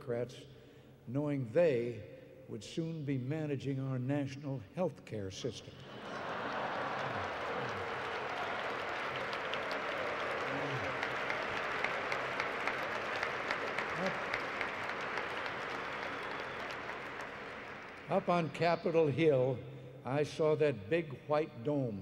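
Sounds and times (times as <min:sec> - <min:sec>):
large audience applauding: 0:05.9 - 0:18.6
crowd voices: 0:06.0 - 0:18.6.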